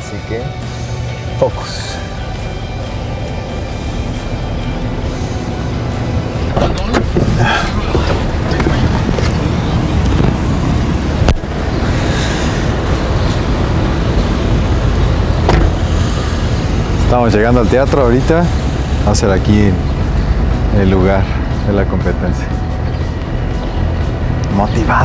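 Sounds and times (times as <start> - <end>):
car engine rumble: 0.0 - 25.0.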